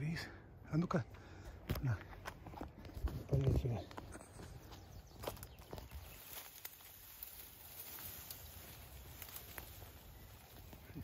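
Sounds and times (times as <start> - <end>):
footsteps: 1.5 - 11.0.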